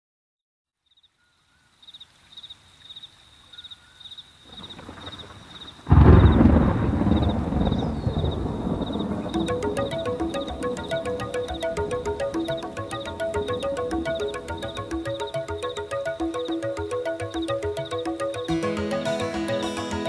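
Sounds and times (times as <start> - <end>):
rain: 1.7 - 18.6
loud thunderclap rumbling: 4.5 - 10.8
chillout music with steady beat: 8.5 - 20.0.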